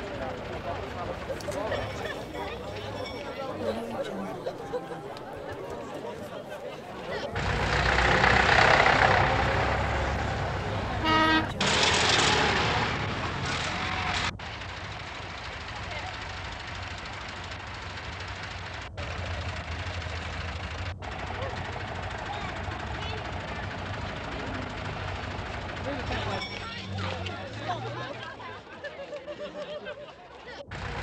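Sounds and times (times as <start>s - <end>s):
engine hum: 0.0s - 28.8s, 30.6s - 31.0s
tractors and lorries passing: 0.0s - 31.0s
vehicle horn toot: 10.9s - 11.8s.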